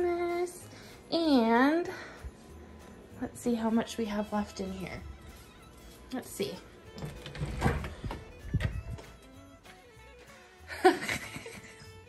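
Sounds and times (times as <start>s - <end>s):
soft background music: 0.0s - 12.0s
door knocks and thumps: 7.0s - 9.1s.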